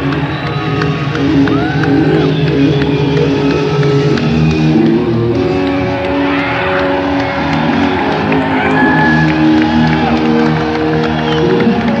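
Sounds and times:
audience cheering and whistling: 0.0 - 12.0.

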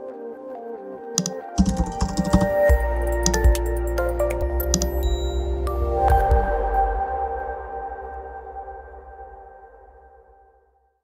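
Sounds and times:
electronic background music: 0.0 - 9.8
computer keyboard typing: 1.2 - 3.7, 4.7 - 5.0.

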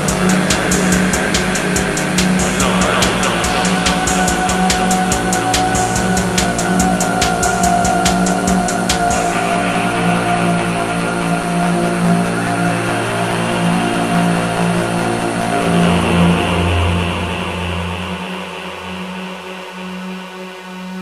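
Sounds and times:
low synth bass note: 0.0 - 19.8
droning synth tones: 0.0 - 21.0.

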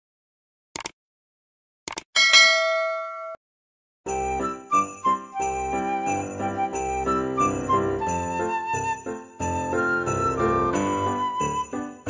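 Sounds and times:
notification bell ding: 2.2 - 3.4.

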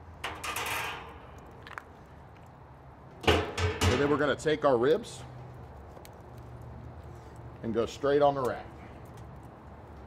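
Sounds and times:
metal grate click and scrape: 0.2 - 1.4
loud metal lid clanks: 3.2 - 4.2.

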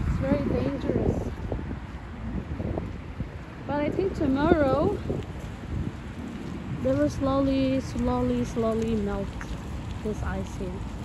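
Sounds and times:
woman's voice: 0.0 - 1.3, 3.7 - 5.1, 6.8 - 10.9.

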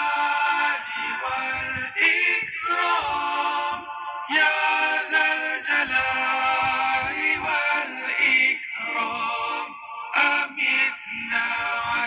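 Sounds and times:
voices chanting a melody: 0.0 - 12.0.

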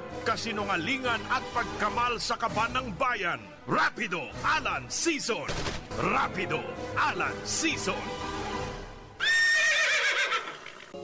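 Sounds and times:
horse whinnying: 9.2 - 11.0.

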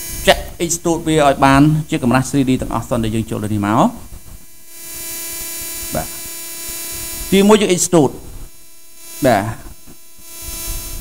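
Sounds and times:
electrical hum with hiss: 0.0 - 11.0.

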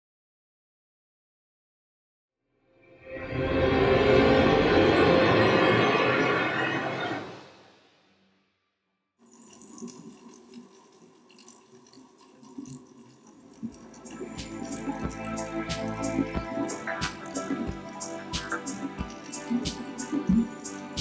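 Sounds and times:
quiet background music: 9.4 - 21.0.

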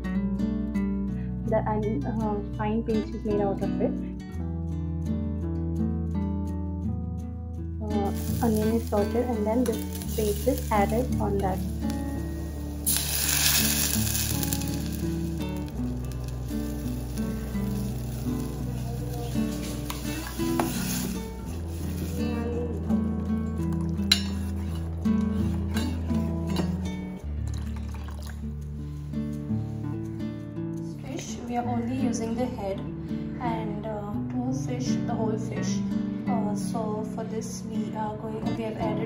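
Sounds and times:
background music: 0.0 - 39.0
curry paste sizzling in pot: 8.0 - 22.4, 23.4 - 26.9
steel spoon scraping pot: 24.0 - 26.8.

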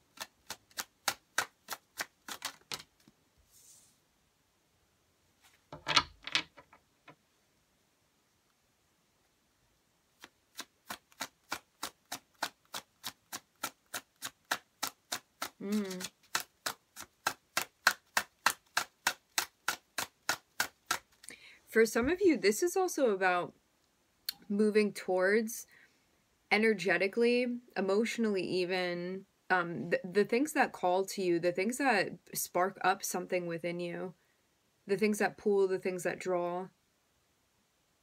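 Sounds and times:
cards being shuffled by hand: 0.0 - 3.8, 10.2 - 21.3.

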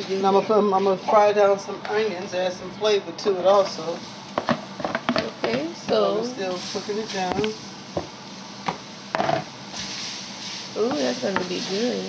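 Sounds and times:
onions sizzling in a skillet: 3.6 - 12.0
spoon scraping and knocking pan: 8.7 - 9.5.

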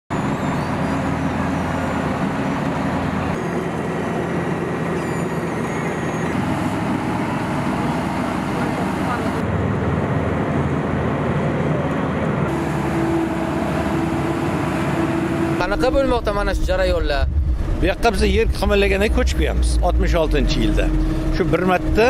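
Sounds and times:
asphalt paver diesel engine drone: 0.1 - 22.0
road roller working: 0.1 - 22.0.

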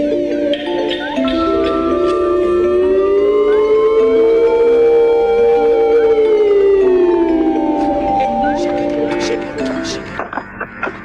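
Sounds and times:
sliding lead note: 0.0 - 11.0
soft sustained chords: 0.0 - 11.0.

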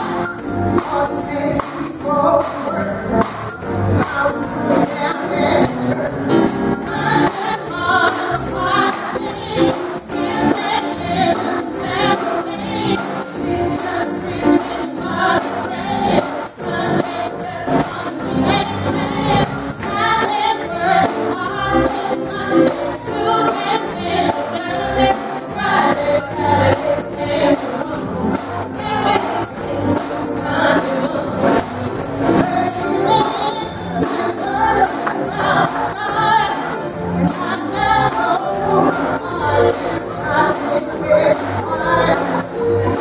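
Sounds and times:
group of voices singing: 0.0 - 43.0
tambourine beat: 0.0 - 43.0.

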